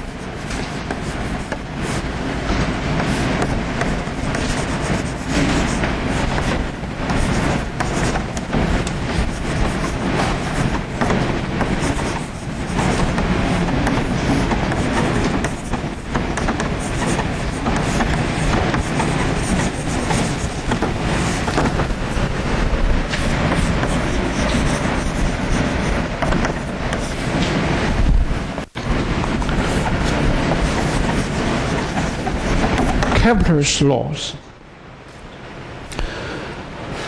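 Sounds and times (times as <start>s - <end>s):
chalk scratching on blackboard: 0.0s - 2.1s, 3.0s - 27.4s, 29.4s - 33.2s.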